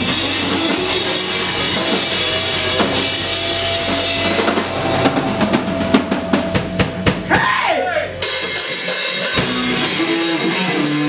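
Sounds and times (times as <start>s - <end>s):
drum kit hits: 0.0s - 11.0s
rock band playing live: 0.0s - 11.0s.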